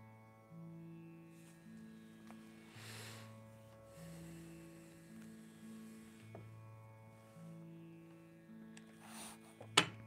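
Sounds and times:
harmonium low held notes: 0.0s - 9.7s.

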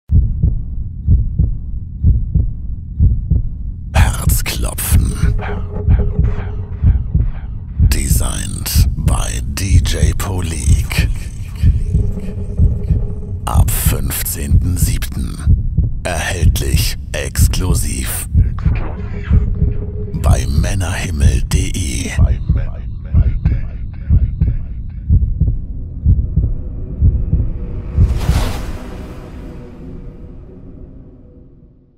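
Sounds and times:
muffled heartbeat thumps: 0.1s - 28.4s.

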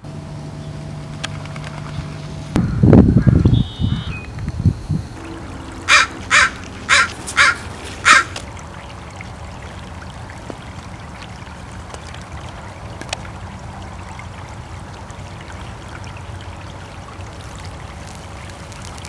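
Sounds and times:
stream trickling: 4.4s - 19.0s
crow cawing: 5.9s - 8.4s.

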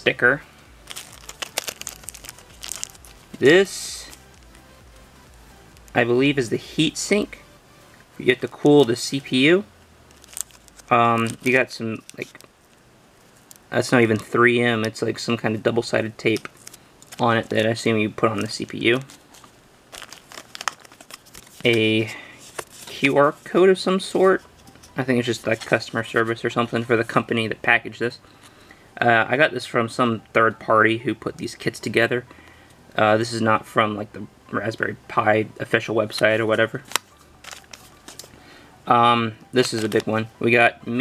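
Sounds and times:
plastic bag crinkling: 0.6s - 4.7s, 10.0s - 14.4s, 16.2s - 23.4s, 36.8s - 38.4s, 39.6s - 40.2s.

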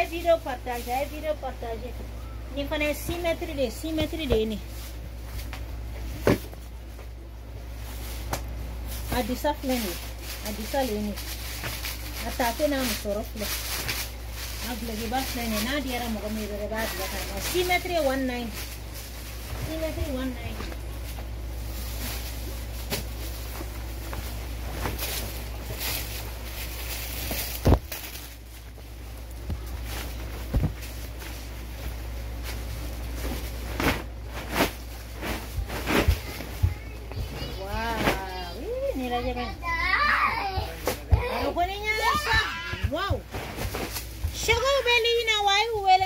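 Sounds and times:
stiff fabric rustling: 2.6s - 46.0s.

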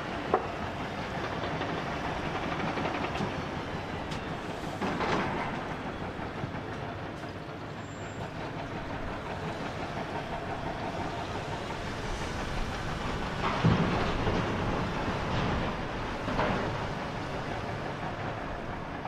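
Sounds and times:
diesel engines running: 0.0s - 19.0s.

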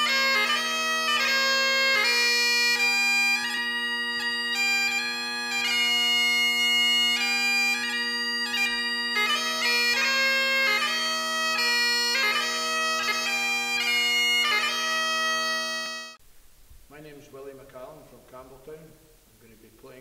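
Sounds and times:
bagpipe chanter melody: 0.0s - 16.2s
bagpipe drones: 0.0s - 16.2s.

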